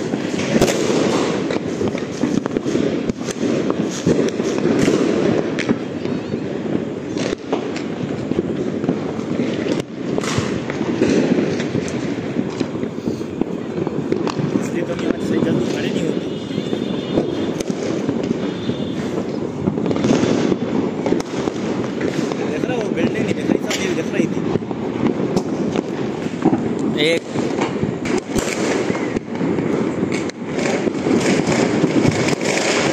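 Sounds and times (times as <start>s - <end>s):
firecrackers crackling: 0.0s - 32.9s.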